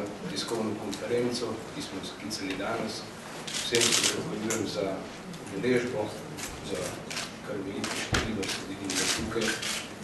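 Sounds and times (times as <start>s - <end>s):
man speaking into microphones: 0.0s - 9.7s.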